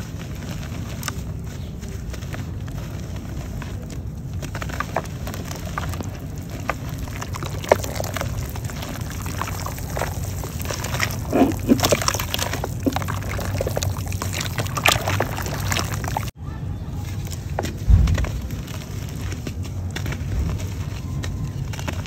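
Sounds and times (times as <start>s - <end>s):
mud crumbling into water: 0.1s - 16.4s
wet mud squelching: 0.3s - 16.3s.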